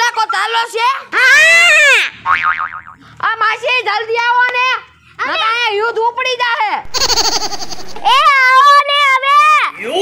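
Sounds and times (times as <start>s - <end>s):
cartoon swooping tone: 6.9s - 8.5s
warbling tone: 6.9s - 8.6s.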